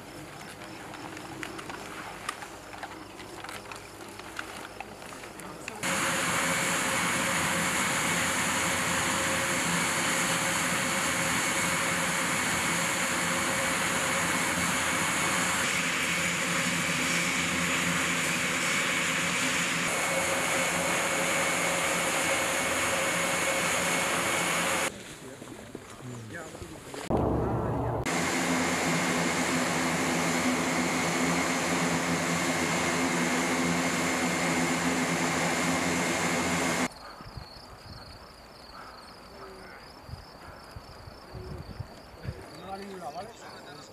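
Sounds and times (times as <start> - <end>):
turboprop engines droning: 5.8 - 24.9, 27.0 - 36.9
short low rumble: 27.1 - 28.1.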